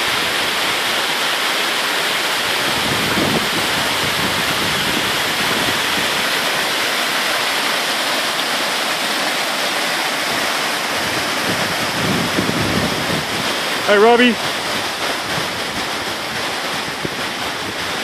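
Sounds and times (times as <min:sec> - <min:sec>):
waterfall roaring: 0:00.0 - 0:18.0.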